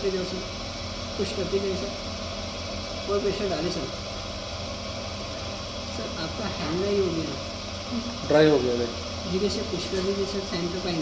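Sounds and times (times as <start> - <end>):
potter's wheel motor hum: 0.0 - 11.0
spinning wheel hiss: 0.0 - 11.0.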